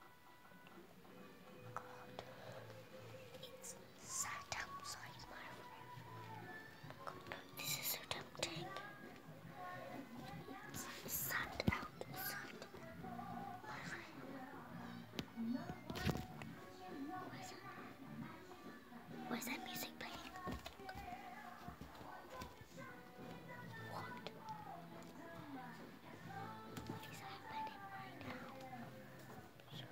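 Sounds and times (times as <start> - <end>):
girl whispering: 1.8 - 5.7, 7.1 - 8.9, 10.7 - 12.8, 13.6 - 14.2, 17.1 - 17.7, 19.3 - 20.5, 23.8 - 24.4, 26.9 - 28.6.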